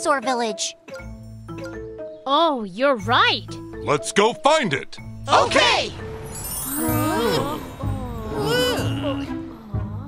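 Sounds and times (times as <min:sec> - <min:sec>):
light background music: 0:00.0 - 0:10.0
cartoon character vocal cry: 0:08.3 - 0:09.4.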